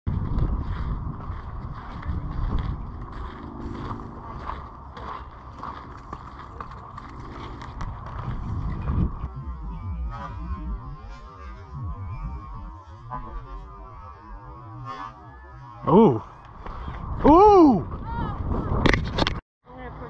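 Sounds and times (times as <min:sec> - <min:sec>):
footsteps on sand: 0:00.1 - 0:10.3
wind buffeting microphone: 0:00.1 - 0:19.4.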